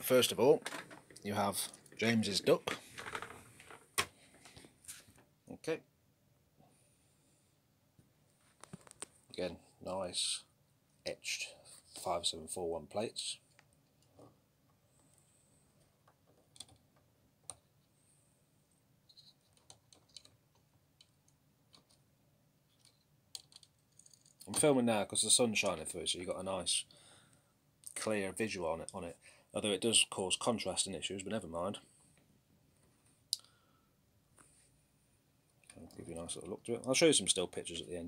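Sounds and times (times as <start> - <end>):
faint clicks and taps: 8.0 - 9.3.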